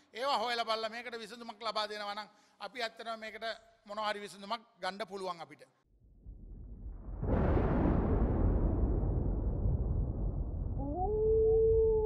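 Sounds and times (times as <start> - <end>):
low rumble: 6.0 - 12.0
wolf howling: 10.8 - 12.0.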